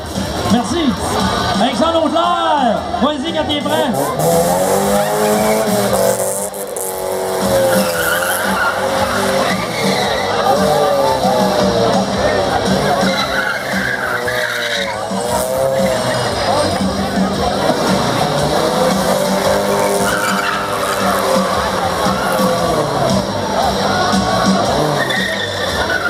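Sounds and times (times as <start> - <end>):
car engine revving: 2.8 - 26.0
tyre squeal: 4.0 - 11.2, 12.9 - 16.2, 19.0 - 23.3, 24.7 - 26.0.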